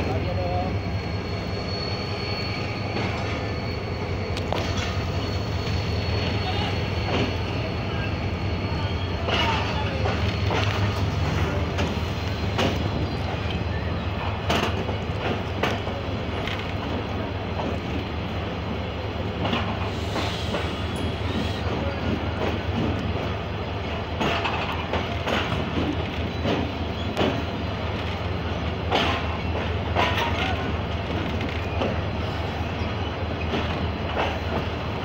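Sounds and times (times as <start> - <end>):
train wheels clicking over rail joints: 9.1 - 18.4, 19.2 - 35.0.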